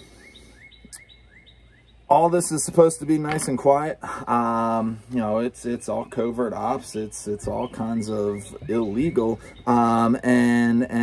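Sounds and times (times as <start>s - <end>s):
bird chirping: 0.0s - 11.0s.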